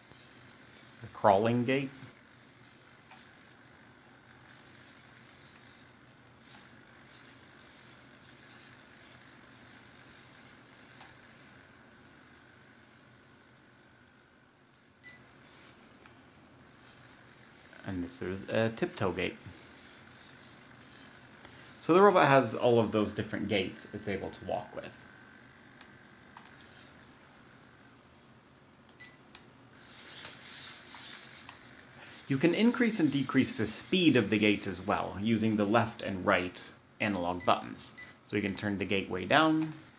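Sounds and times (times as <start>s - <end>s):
robot servos whirring: 0.0s - 13.8s, 15.2s - 16.0s, 16.6s - 28.3s, 29.8s - 34.8s.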